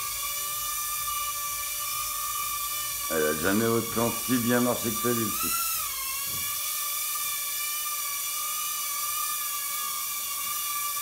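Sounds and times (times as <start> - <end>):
drone propellers whining: 0.0 - 11.0.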